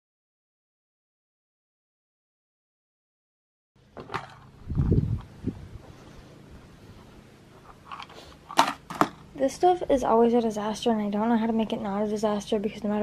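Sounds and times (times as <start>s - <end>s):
faint steady hum: 3.8s - 13.0s.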